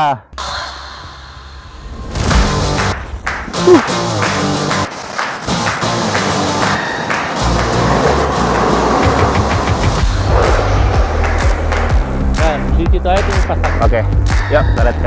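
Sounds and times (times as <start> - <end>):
background music with beat and bass: 5.5 - 15.0.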